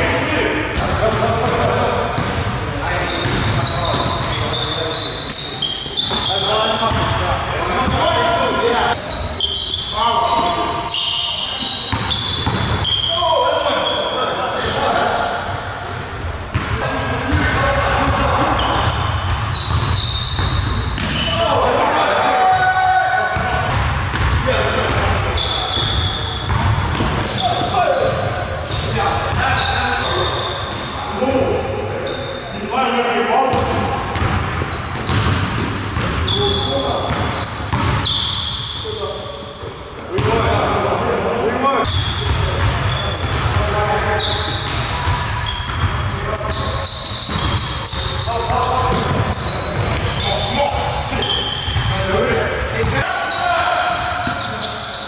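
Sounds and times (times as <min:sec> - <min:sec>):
players' voices: 0:00.0 - 0:55.0
sneaker squeaks: 0:00.8 - 0:32.7, 0:33.4 - 0:40.6, 0:41.8 - 0:55.0
basketball dribbling: 0:06.0 - 0:07.2, 0:11.9 - 0:13.0, 0:17.4 - 0:21.2, 0:33.5 - 0:38.1, 0:47.1 - 0:50.5.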